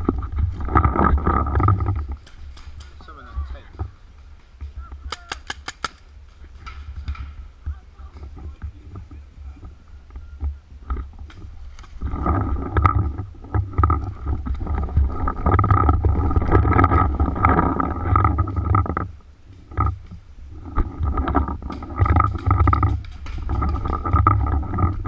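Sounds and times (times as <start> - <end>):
wind rumble on microphone: 0.0 - 5.2, 6.0 - 25.0
camera handling noise: 5.2 - 6.0.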